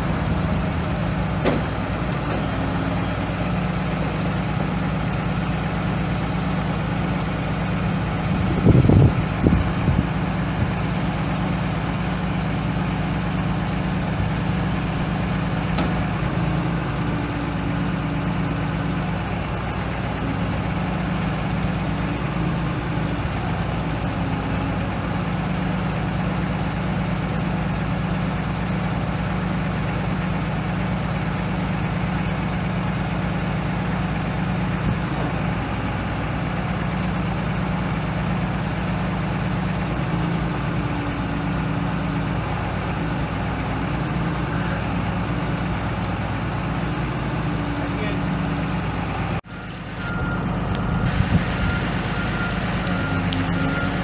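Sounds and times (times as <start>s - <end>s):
diesel truck idling: 0.0s - 54.0s.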